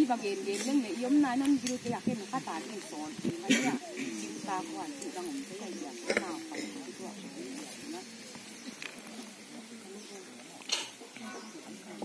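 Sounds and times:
woman talking: 0.0s - 8.1s.

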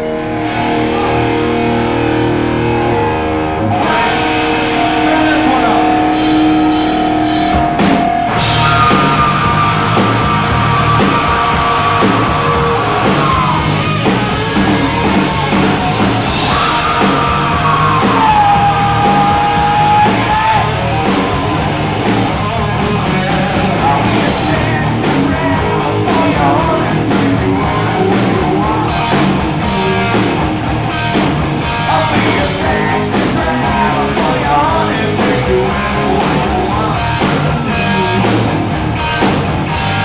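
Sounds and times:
electric guitar ringing chords: 0.0s - 20.0s
heavy rock band playing: 0.0s - 40.0s
high yelled vocal note: 0.6s - 21.0s.

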